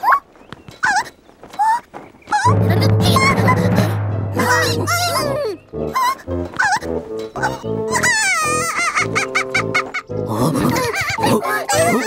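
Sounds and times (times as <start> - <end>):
bouncy staccato cartoon music: 2.5 - 12.0.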